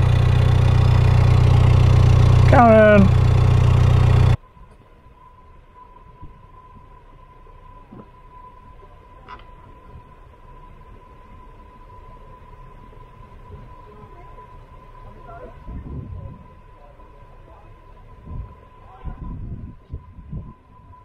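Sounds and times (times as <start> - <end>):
boat engine idling: 0.0 - 4.4
thin steady high tone: 0.0 - 21.0.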